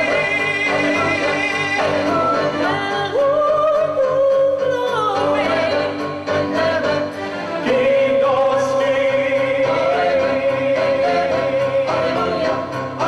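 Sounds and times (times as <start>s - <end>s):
choir backing voices: 0.0s - 4.2s, 5.2s - 13.0s.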